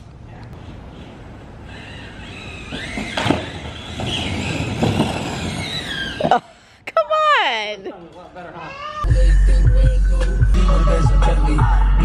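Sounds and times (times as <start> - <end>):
wheels rolling on concrete: 0.5 - 6.7
high wavering squeal: 1.6 - 6.6
wheels knocking over joints: 2.0 - 6.6.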